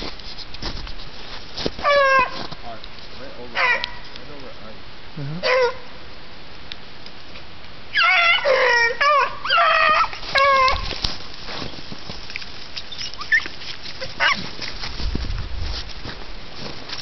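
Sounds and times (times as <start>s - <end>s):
hounds baying: 1.8s - 2.4s, 3.5s - 4.1s, 5.4s - 5.9s, 7.9s - 10.9s, 12.8s - 14.6s.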